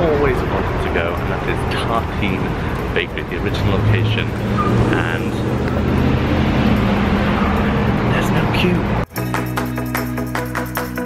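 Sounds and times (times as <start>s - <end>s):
vehicle engine running: 0.0s - 9.1s
street traffic: 0.0s - 11.0s.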